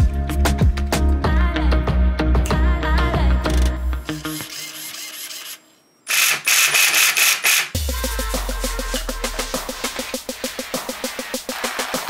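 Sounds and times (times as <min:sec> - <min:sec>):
music with a beat: 0:00.0 - 0:04.2, 0:07.8 - 0:12.0
background music: 0:00.0 - 0:04.5, 0:07.8 - 0:12.0
mechanical rasping clicks: 0:03.5 - 0:07.8.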